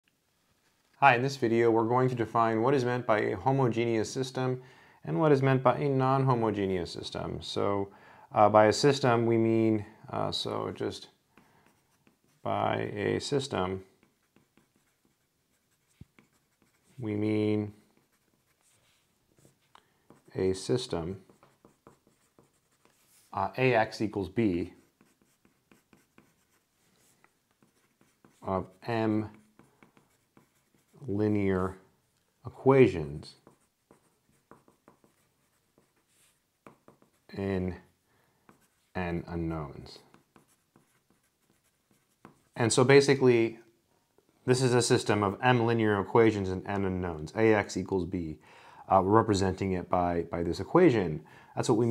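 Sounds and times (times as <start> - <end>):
pencil scratching on paper: 11.4 - 12.5, 13.8 - 17.1, 17.8 - 20.4, 21.2 - 23.4, 24.7 - 31.2, 33.3 - 37.4, 38.5 - 38.9, 40.0 - 42.6.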